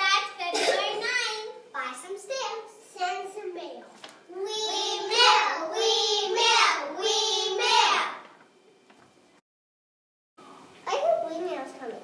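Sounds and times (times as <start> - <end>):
young children singing: 4.3 - 8.3.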